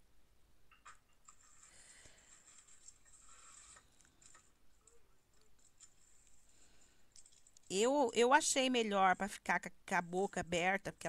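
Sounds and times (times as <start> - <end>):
scratchy handling noise: 0.7 - 6.5.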